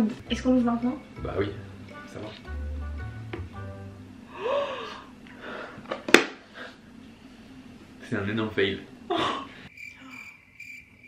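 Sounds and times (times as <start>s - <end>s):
person gasping: 4.3s - 5.9s.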